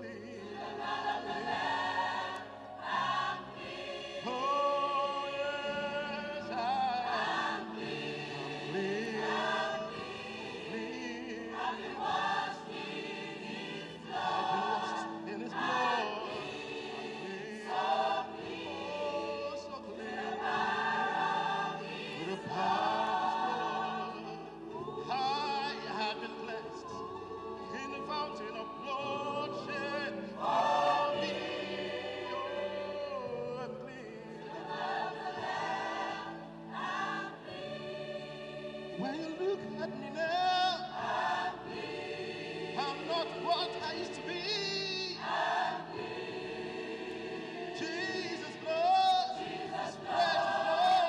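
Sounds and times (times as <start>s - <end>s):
choir singing a hymn: 0.0s - 51.0s.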